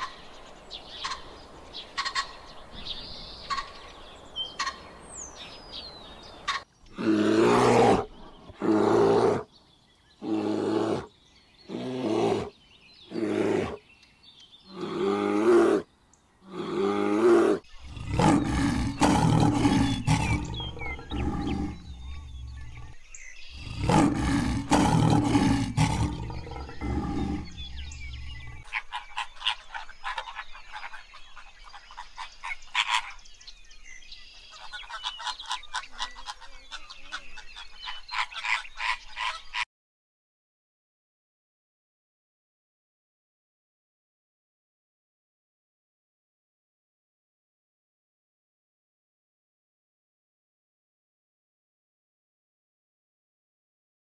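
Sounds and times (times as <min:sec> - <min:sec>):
birds chattering: 0:00.0 - 0:39.6
lion roaring: 0:06.9 - 0:09.4, 0:10.2 - 0:11.1, 0:11.7 - 0:12.5, 0:13.1 - 0:13.8, 0:14.7 - 0:15.8, 0:16.4 - 0:23.0, 0:23.6 - 0:28.7.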